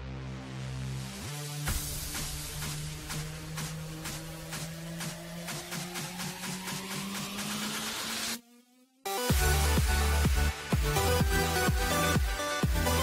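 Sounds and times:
electronic dance music: 0.1s - 13.0s
rising sweep: 2.0s - 8.4s.

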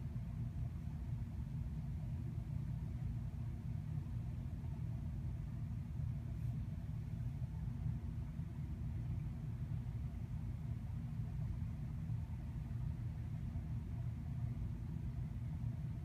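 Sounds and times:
low background rumble: 0.0s - 16.0s.

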